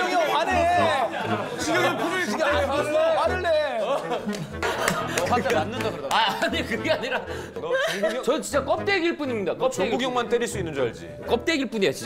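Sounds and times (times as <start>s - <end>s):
people laughing: 0.0s - 8.6s.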